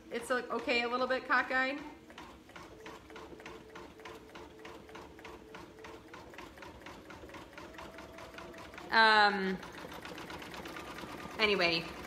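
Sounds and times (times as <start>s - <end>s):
steady motor hum: 0.0s - 12.0s.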